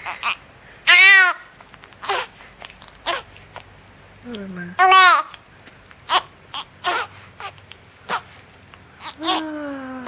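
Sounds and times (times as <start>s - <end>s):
newborn baby crying: 0.0s - 2.4s, 6.1s - 8.3s, 9.0s - 10.0s.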